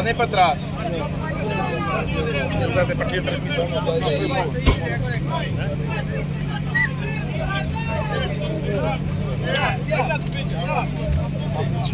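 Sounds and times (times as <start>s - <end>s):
pickup truck engine idling: 0.0s - 11.9s.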